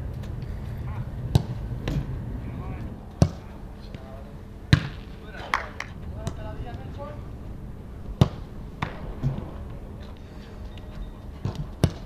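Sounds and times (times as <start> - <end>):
football kicked hard: 1.3 - 2.1, 4.7 - 5.0, 8.2 - 9.5, 11.4 - 12.0.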